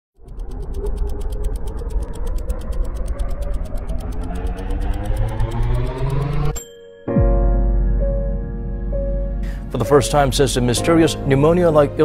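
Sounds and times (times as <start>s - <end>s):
fast mechanical ticking: 0.1s - 6.6s
low rumble: 0.2s - 6.6s
tones rising in pitch: 0.2s - 9.3s.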